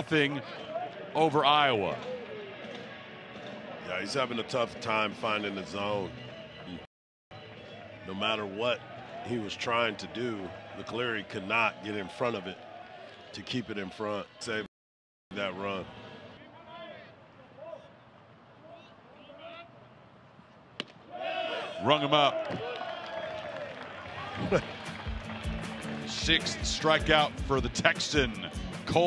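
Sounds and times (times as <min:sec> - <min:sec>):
ballpark background noise: 0:00.0 - 0:14.7, 0:15.3 - 0:27.3
crowd and dugout noise: 0:00.0 - 0:14.7, 0:15.3 - 0:29.0.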